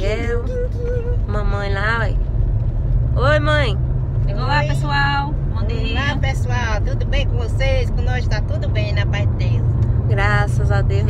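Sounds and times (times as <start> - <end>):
women talking: 0.0 - 0.5, 1.3 - 2.2, 3.2 - 6.2, 10.1 - 11.0
car rumble from inside cabin: 0.0 - 11.0.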